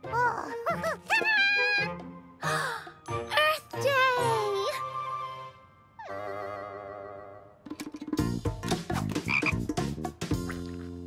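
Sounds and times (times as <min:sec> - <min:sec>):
cartoon frog croaking: 0:09.3 - 0:09.6.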